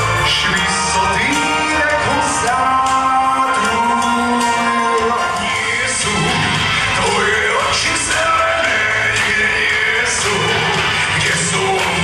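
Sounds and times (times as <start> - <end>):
musical accompaniment: 0.0 - 12.0
man singing into a microphone: 0.2 - 12.0.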